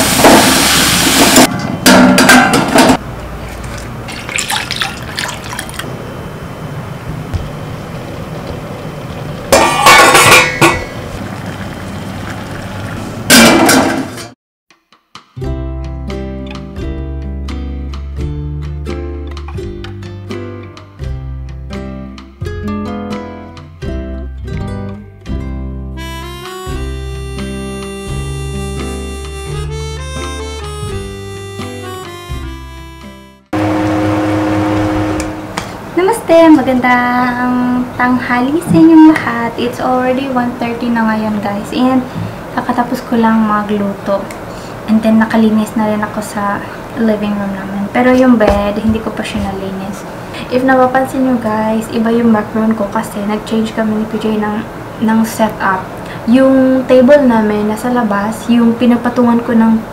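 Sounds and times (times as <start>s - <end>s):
milk pouring into a pot: 3.6s - 5.8s
steel pot clattering: 9.4s - 11.5s
background music: 14.9s - 33.5s
loud steady hum with hiss: 33.6s - 59.9s.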